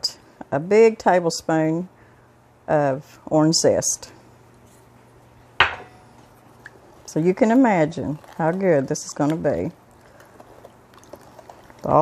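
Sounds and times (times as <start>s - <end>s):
knock on glass bowl: 5.6s - 5.9s.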